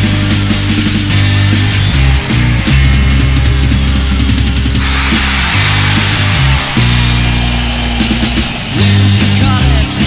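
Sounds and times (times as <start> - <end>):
bass notes: 0.0 - 10.0
distorted electric guitar: 0.0 - 10.0
drums and cymbals: 0.0 - 10.0.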